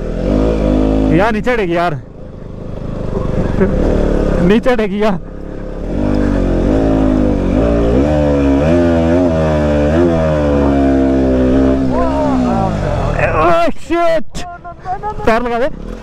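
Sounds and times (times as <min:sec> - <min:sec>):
motorcycle engine revving: 0:00.0 - 0:13.5, 0:15.3 - 0:16.0
person shouting: 0:11.9 - 0:13.6, 0:14.4 - 0:15.4
man calling out loudly: 0:11.9 - 0:15.8.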